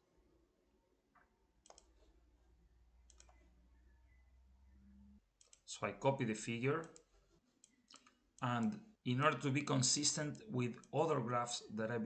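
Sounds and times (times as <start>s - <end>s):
faint low hum: 0.0s - 12.0s
faint sharp clicks: 1.2s - 1.9s, 3.1s - 3.4s, 6.8s - 8.8s.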